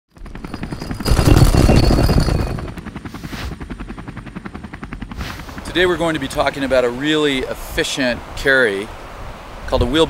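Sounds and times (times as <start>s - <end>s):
helicopter rotor thudding: 0.1s - 6.7s.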